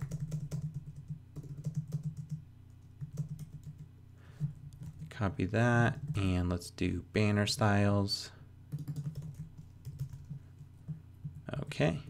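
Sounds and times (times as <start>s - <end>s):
typing on computer keyboard: 0.0s - 3.9s, 4.5s - 5.1s, 8.7s - 11.6s.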